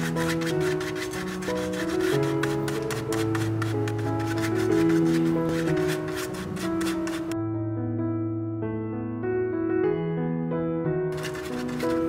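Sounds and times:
paintbrush scrubbing on canvas: 0.0 - 7.4, 11.1 - 12.0
background music sustained notes: 0.0 - 12.0.

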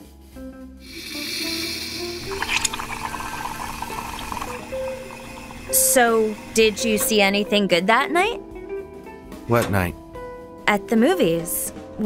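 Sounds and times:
soft background music: 0.0 - 12.0
coffee pouring into a cup: 0.9 - 7.0.

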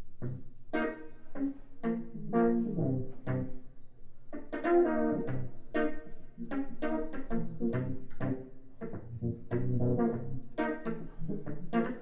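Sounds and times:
upright bass: 9.1 - 10.4.

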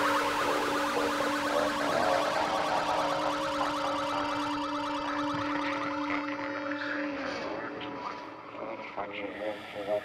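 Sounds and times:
pulsing alarm-like warble: 0.0 - 8.6
low synthesizer drone: 0.0 - 10.0.

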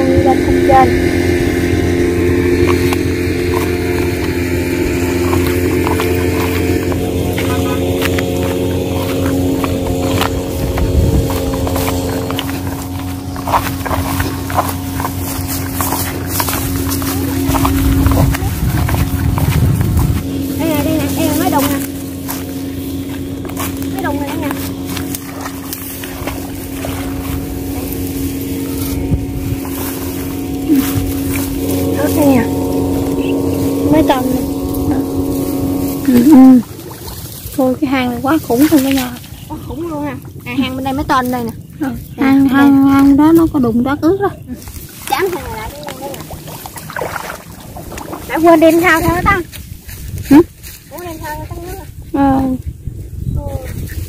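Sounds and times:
low rumble: 0.0 - 54.0
small engine droning: 0.0 - 54.0.

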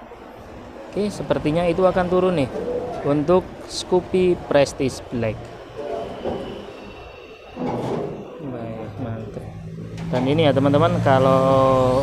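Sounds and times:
scooters being unloaded rumbling: 0.0 - 12.0
traffic: 0.0 - 12.0.

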